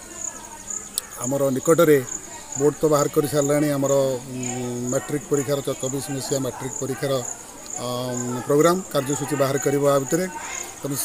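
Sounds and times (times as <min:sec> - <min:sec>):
insects chirring: 0:00.0 - 0:11.0
man speaking: 0:01.1 - 0:11.0.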